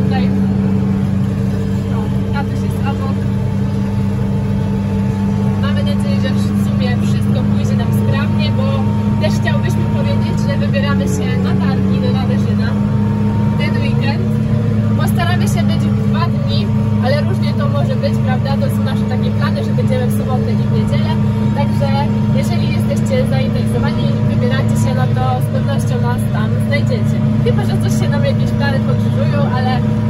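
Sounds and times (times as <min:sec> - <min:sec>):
tractor engine droning: 0:00.0 - 0:30.0.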